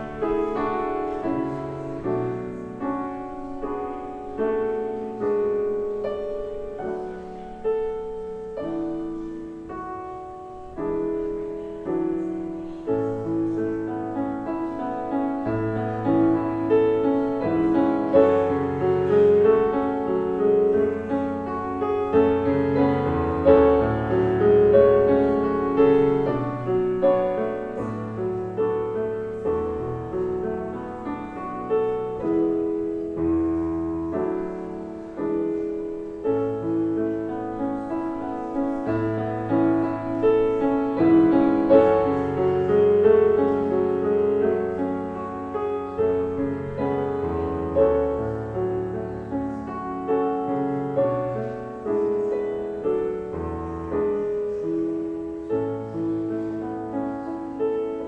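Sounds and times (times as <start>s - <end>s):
grand piano played softly: 0.0s - 58.0s.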